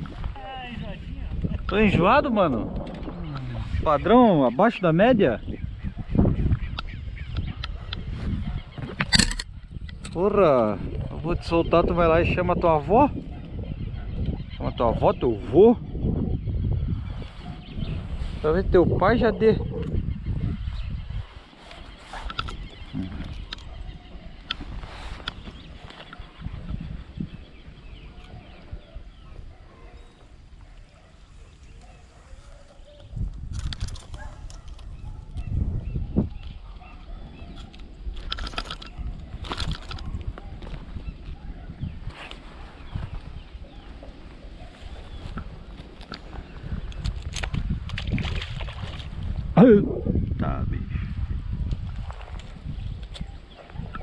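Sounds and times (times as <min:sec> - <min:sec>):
wind buffeting microphone: 0:00.0 - 0:54.0
footsteps in grass: 0:24.4 - 0:26.4, 0:42.0 - 0:47.3.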